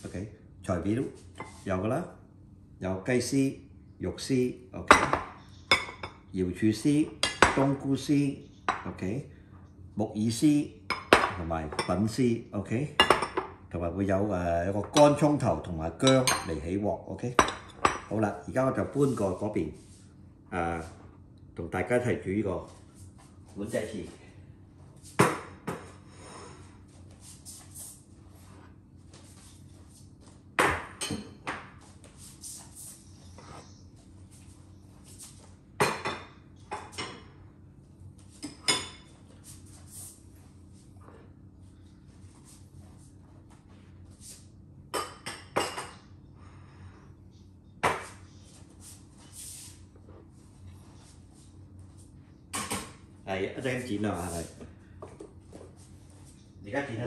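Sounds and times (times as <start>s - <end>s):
faint steady hum: 0.0s - 57.0s
ceramic dishes clinking: 38.4s - 39.2s.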